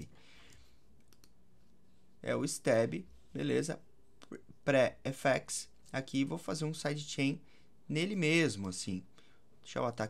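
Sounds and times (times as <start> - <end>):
faint computer clicks: 0.4 - 1.4.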